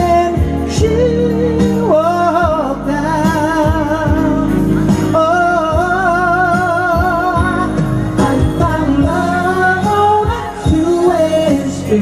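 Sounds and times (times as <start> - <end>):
bass line: 0.0 - 12.0
male vocal group singing: 0.0 - 12.0.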